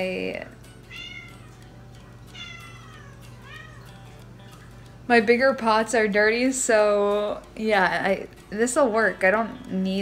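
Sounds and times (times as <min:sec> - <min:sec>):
cat meowing: 0:00.9 - 0:01.6, 0:02.3 - 0:04.0.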